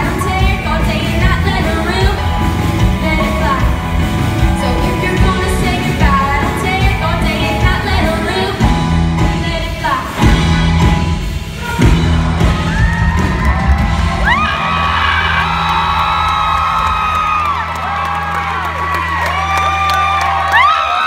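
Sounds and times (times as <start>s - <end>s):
audience cheering and whooping: 11.8s - 21.0s.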